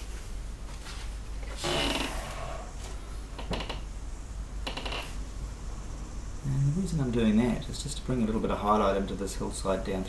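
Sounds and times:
low steady hum: 0.0 - 10.0
person breathing: 2.1 - 3.3.

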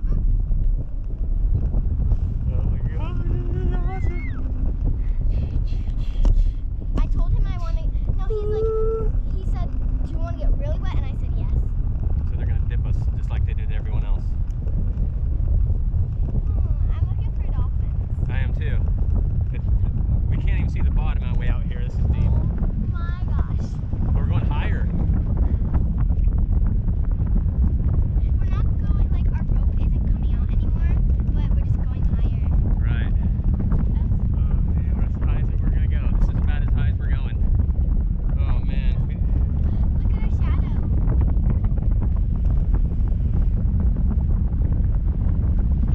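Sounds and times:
wind rushing over microphone: 0.0 - 45.9.

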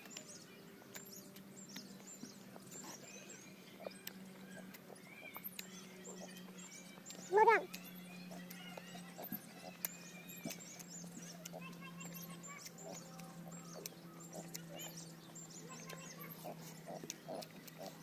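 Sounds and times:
chewing clicks: 0.0 - 18.0
small birds chirping: 0.0 - 18.0
steady low hum: 0.0 - 18.0.

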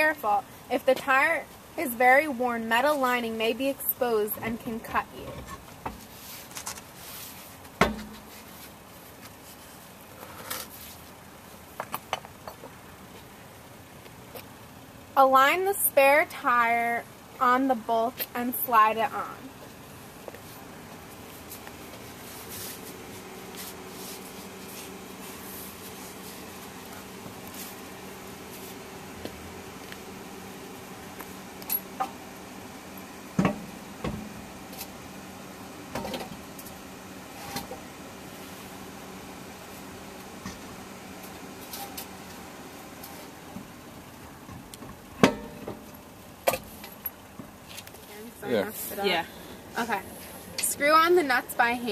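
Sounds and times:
steady low hum: 0.0 - 51.9
metallic clinks of wheel nuts: 31.6 - 32.0, 45.2 - 47.3.

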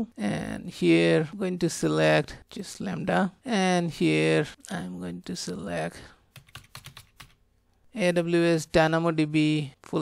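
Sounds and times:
computer keyboard typing: 6.3 - 7.4.

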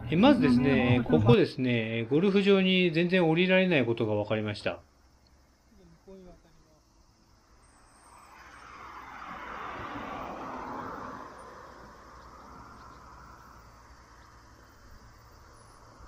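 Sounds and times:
car passing by: 7.4 - 16.0.

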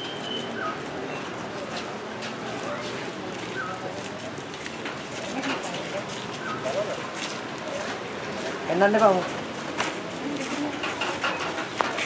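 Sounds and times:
bird chirps: 0.0 - 1.3
distant voices: 0.0 - 12.0
outdoor background noise: 0.0 - 12.0.

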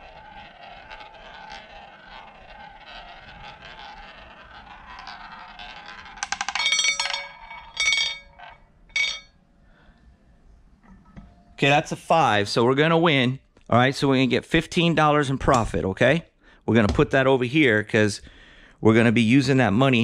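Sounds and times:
roulette ball clattering: 0.0 - 9.4
roulette ball rolling: 0.0 - 9.4.

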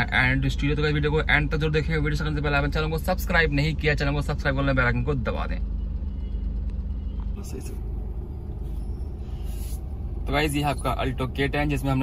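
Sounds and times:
car idling: 0.0 - 12.0.

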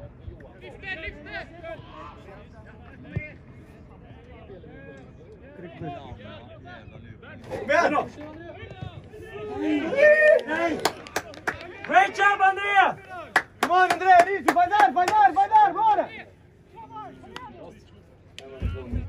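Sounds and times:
players shouting: 7.4 - 17.7.

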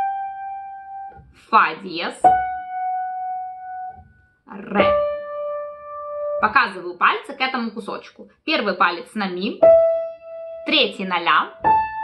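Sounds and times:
piano notes: 0.0 - 7.0, 9.6 - 12.0.

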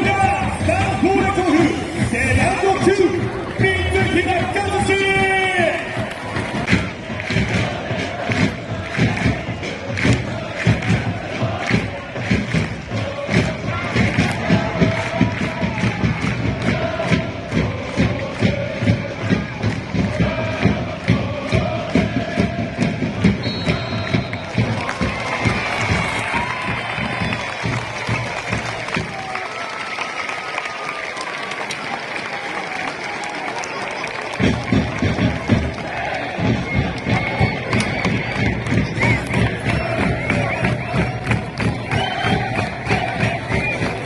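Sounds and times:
football supporters chanting: 0.0 - 29.1, 34.6 - 44.0
steady drum beat: 0.0 - 29.4, 34.4 - 44.0.

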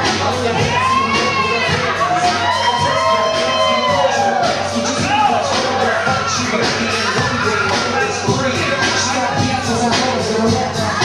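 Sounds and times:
crowd cheering and shrieking: 0.0 - 10.1
background music: 0.0 - 11.0
long high yells: 0.7 - 6.2.

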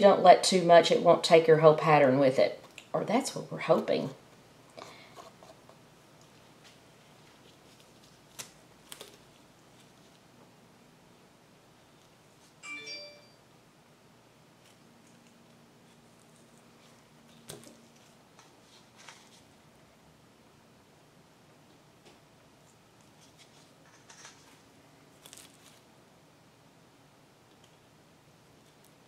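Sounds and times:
ringing ding: 12.6 - 13.4.

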